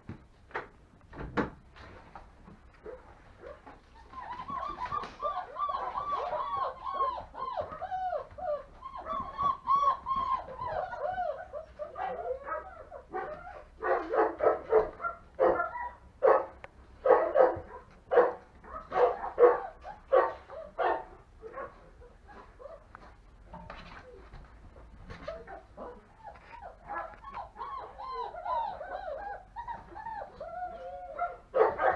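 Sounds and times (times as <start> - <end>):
puppies yapping: 2.9 - 22.9, 25.1 - 31.9
puppies whining: 3.4 - 13.8, 18.7 - 21.1, 25.1 - 31.9.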